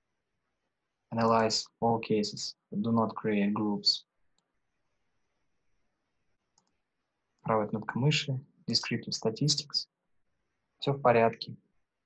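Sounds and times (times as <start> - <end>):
computer mouse click: 6.5 - 6.8.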